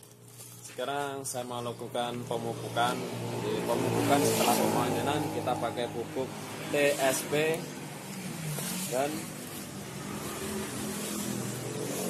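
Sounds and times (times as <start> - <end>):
vehicle engine humming: 1.2 - 12.0.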